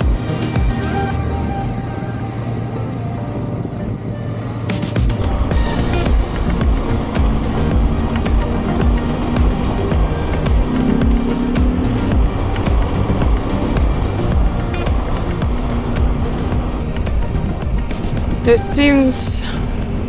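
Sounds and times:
background music: 0.0 - 20.0
motorcycle engine: 0.0 - 20.0
wind rush: 0.0 - 20.0.

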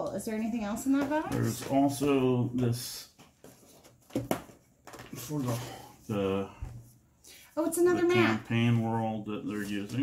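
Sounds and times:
items being handled: 0.7 - 2.2, 3.0 - 6.1.

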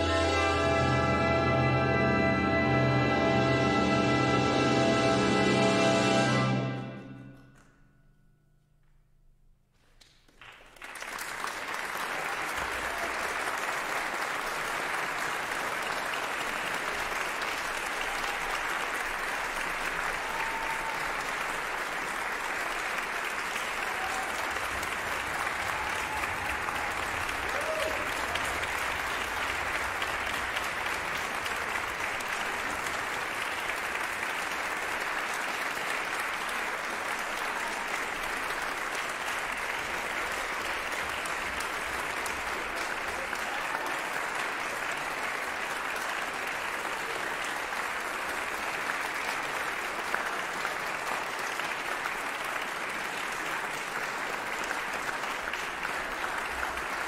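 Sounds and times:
audience applauding: 9.9 - 57.0
short cheers: 20.0 - 21.5, 23.6 - 28.8, 37.4 - 38.2, 43.1 - 44.2.

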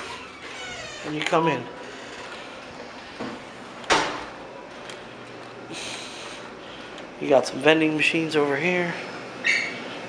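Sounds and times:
door shutting with a thud: 3.2 - 4.3.

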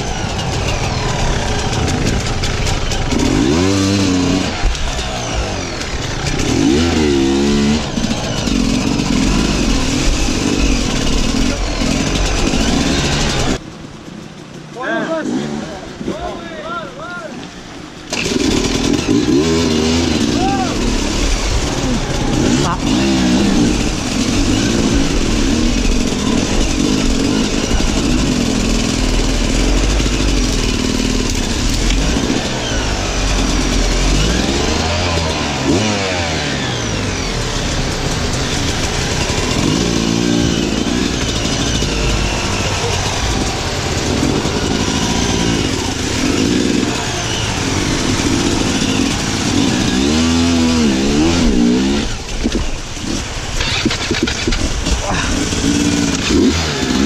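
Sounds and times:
motorcycle engine revving: 0.0 - 16.8, 17.6 - 57.0
water splashing under wheels: 36.8 - 57.0.

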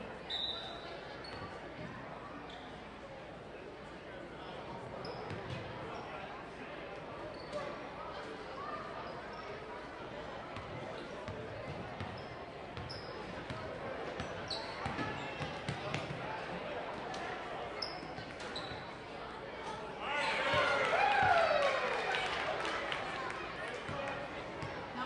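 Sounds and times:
chatter of voices: 0.0 - 25.0
sneaker squeaks: 0.2 - 2.8, 5.0 - 6.1, 7.3 - 7.8, 11.7 - 13.6, 14.2 - 16.2, 17.7 - 19.1.

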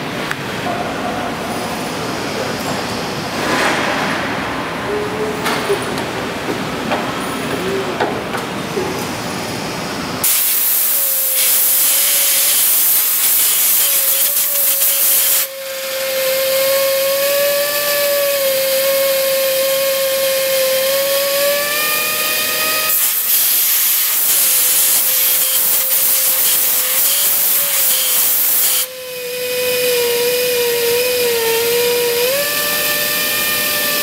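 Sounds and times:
reaming machine hissing and whining: 9.3 - 34.0.

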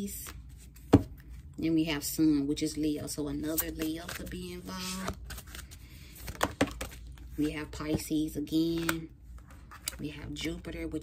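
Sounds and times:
card rustling: 3.4 - 8.0.

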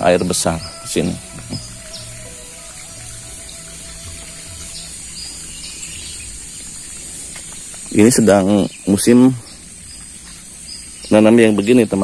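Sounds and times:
faint background music: 0.0 - 7.0
bird chirps: 0.0 - 12.0
steady high-pitched hiss: 0.0 - 12.0.

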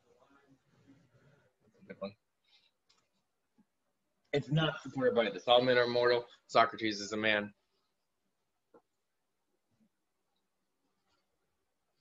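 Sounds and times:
faint clicks: 2.8 - 3.7.

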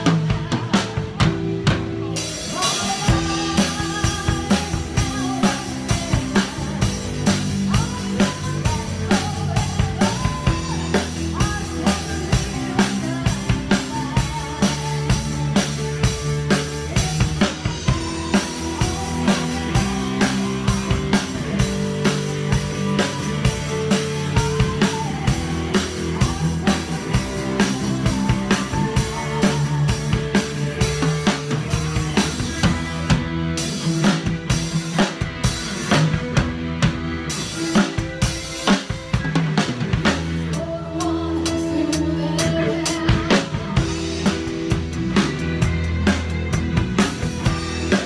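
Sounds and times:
drum kit played with sticks: 0.0 - 48.0
recorded song with melody and bass: 0.0 - 48.0.

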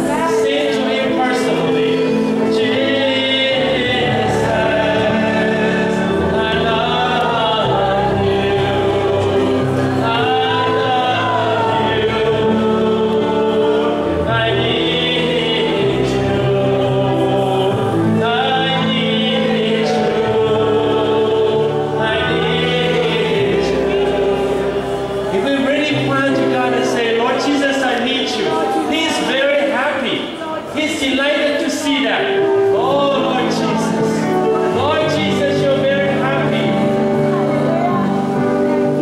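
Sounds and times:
electronic keyboard chords: 0.0 - 29.2, 32.3 - 39.0
man singing: 0.0 - 37.2
choir voices: 0.0 - 39.0.

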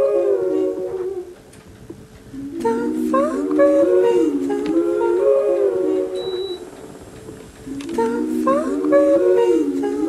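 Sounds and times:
hummed vocal sample gliding in pitch: 0.0 - 1.4, 2.4 - 6.8, 7.7 - 10.0.

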